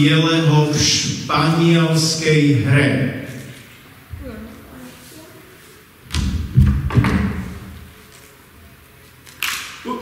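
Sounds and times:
microphone handling thumps and rustling: 6.1 - 7.8.

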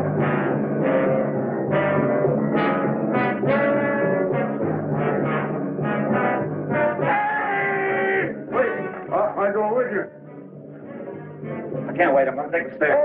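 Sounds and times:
dramatic orchestral brass music: 0.0 - 12.4.

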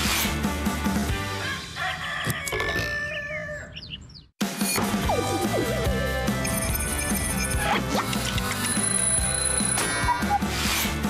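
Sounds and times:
rooster crowing: 1.4 - 3.8.

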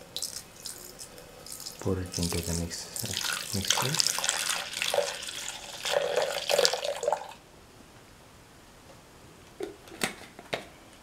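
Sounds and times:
milk pouring into jar: 0.1 - 7.4.

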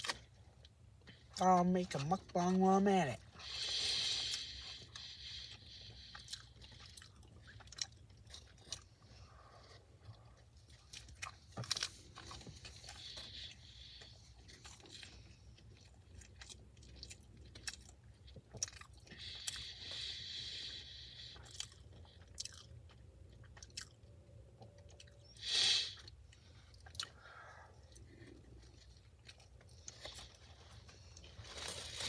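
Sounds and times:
chewing and crunching: 0.0 - 32.0.

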